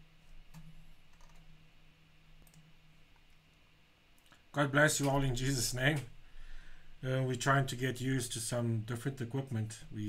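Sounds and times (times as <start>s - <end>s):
steady low hum: 0.0s - 10.0s
faint clicks: 2.4s - 3.6s.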